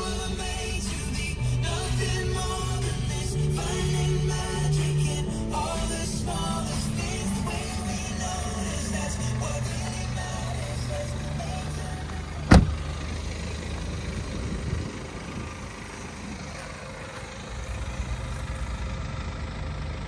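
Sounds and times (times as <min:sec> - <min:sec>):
diesel engine idling: 0:00.0 - 0:20.0
car door slamming: 0:12.4 - 0:12.8.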